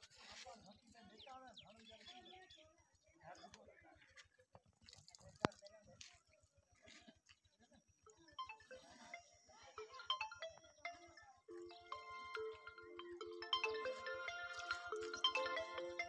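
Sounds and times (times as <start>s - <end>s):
faint voices: 8.1s - 16.0s
electronic beeping ringtone melody: 8.2s - 16.0s.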